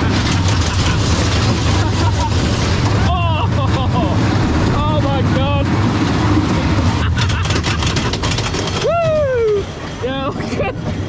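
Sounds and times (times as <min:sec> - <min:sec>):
roller coaster track clattering: 0:00.0 - 0:11.0
roller coaster train rumbling: 0:00.0 - 0:11.0.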